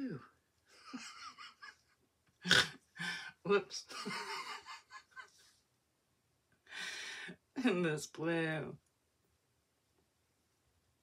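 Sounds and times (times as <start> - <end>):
woman laughing: 0.8 - 1.9, 3.9 - 5.4.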